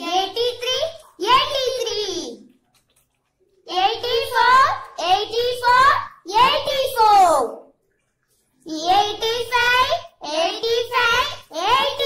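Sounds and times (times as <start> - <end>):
child counting aloud: 0.0 - 2.5, 3.7 - 7.7, 8.7 - 12.0.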